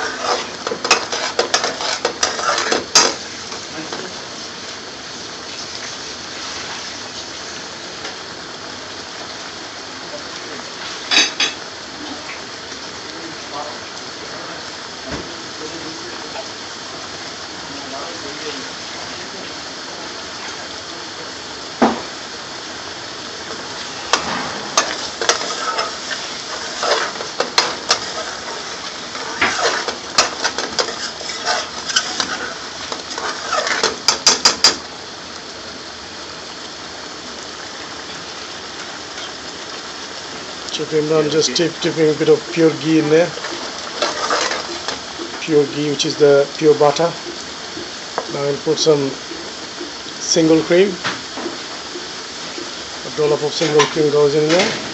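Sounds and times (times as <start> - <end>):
ladle scraping and clinking: 0.0 - 3.6, 23.8 - 34.7, 42.5 - 45.0
sauce simmering and bubbling: 0.0 - 54.5.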